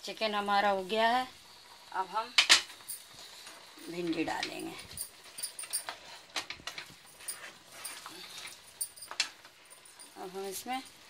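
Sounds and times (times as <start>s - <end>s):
spatula scraping a pan: 5.2s - 8.7s.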